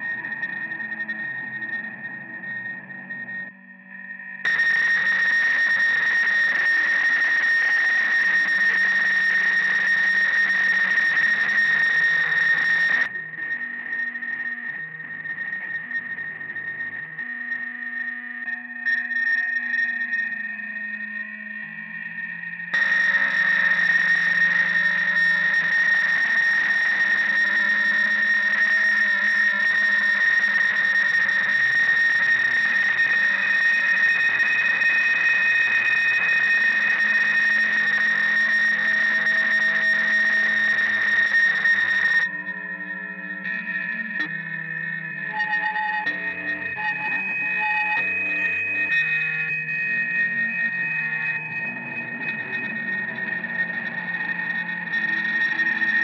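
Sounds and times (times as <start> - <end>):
distorted electric guitar noise: 0.0 - 56.0
steady high whine: 22.2 - 56.0.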